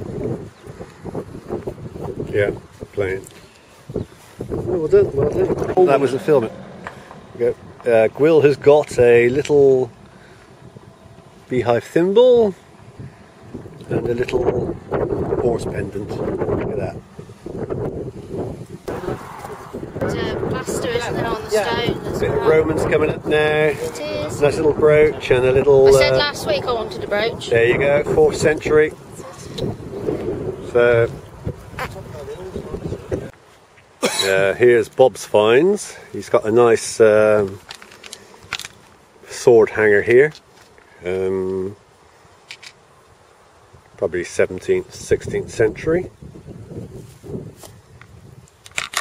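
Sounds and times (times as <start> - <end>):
wind buffeting microphone: 0.0 - 33.4, 43.6 - 49.0
faint outdoor background noise: 0.0 - 49.0.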